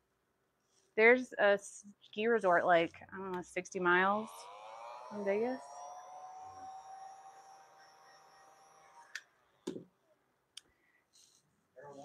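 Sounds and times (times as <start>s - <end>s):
faint steady tones: 2.1s - 12.0s.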